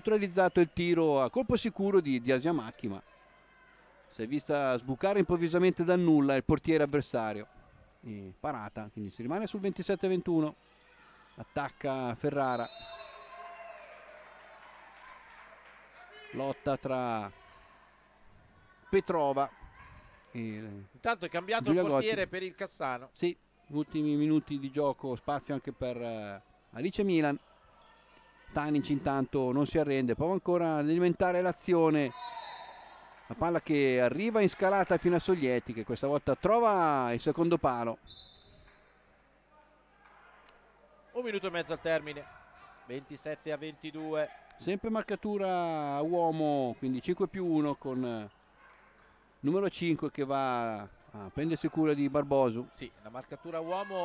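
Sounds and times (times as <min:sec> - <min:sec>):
handball game in sports hall: 0:00.0 - 0:54.0.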